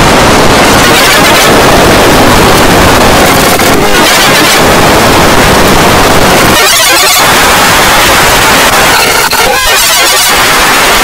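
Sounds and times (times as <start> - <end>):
loud distorted noise: 0.0 - 11.0.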